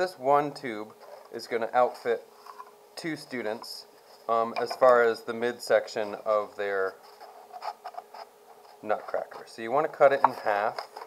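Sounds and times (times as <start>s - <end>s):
cardboard rustling: 10.4s - 11.0s.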